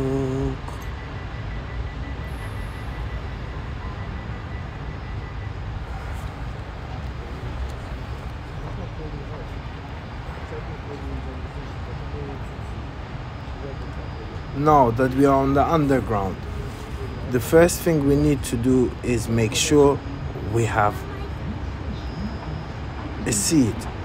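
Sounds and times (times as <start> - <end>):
faint high tone: 0.0 - 6.6, 13.6 - 24.0
train low rumble: 0.0 - 24.0.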